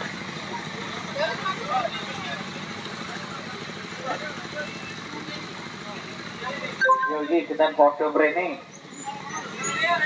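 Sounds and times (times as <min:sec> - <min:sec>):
indistinct chatter: 0:08.6 - 0:10.0.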